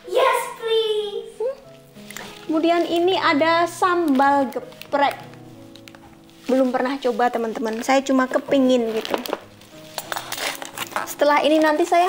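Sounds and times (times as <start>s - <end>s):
soft background music: 0.0s - 12.0s
cardboard packing rustling: 2.1s - 12.0s.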